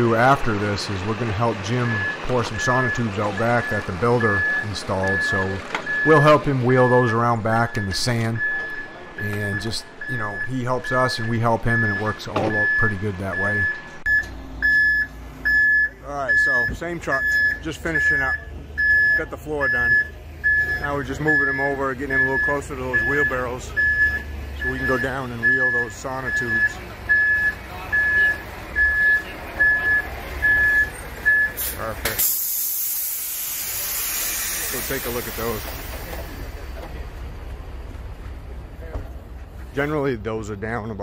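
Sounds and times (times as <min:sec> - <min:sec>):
truck back-up alarm beeping: 0:00.0 - 0:36.6
diesel engine running: 0:00.0 - 0:41.0
loud steady hiss: 0:31.6 - 0:36.4.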